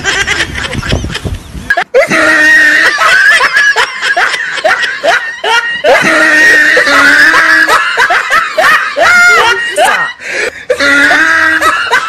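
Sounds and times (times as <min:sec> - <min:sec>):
laughter in short bursts: 0:00.0 - 0:10.2.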